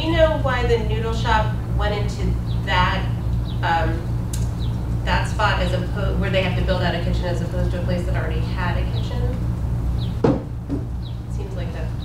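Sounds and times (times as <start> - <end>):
steady low hum: 0.0 - 12.0
short knock: 10.2 - 10.9.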